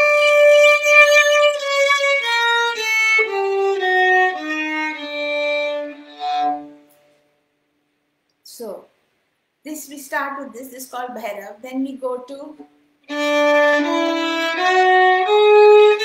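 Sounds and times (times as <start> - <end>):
violin playing a scale: 0.0 - 7.1, 13.0 - 16.0.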